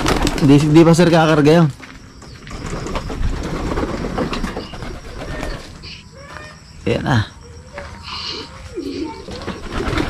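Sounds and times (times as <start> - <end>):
pigeons cooing: 2.4 - 6.6, 7.3 - 10.0.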